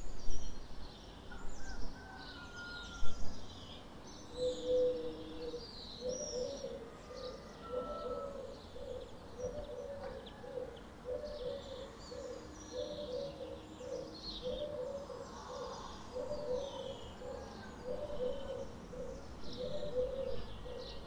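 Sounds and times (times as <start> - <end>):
dove cooing: 4.4 - 21.0.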